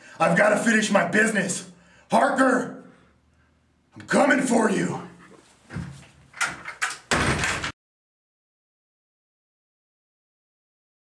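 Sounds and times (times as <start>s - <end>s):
door slamming: 5.7s - 7.8s.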